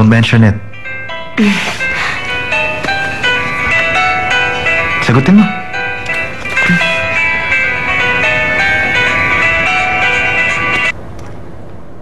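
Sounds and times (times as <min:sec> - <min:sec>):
phone ringtone electronic melody: 0:00.7 - 0:10.9.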